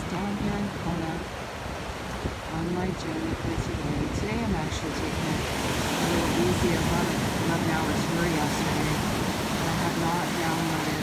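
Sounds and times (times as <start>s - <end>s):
person speaking: 0.0s - 1.3s, 2.4s - 11.0s
ocean surf washing ashore: 0.0s - 11.0s.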